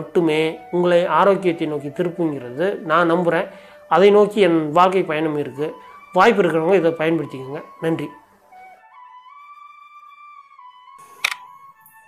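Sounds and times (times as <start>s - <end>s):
soft flute melody: 0.0s - 12.0s
sharp click effect: 11.0s - 11.5s.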